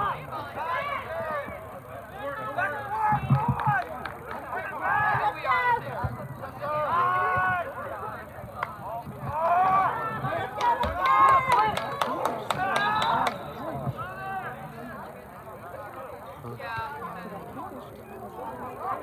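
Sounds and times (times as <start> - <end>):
people shouting and calling: 4.4 - 8.3.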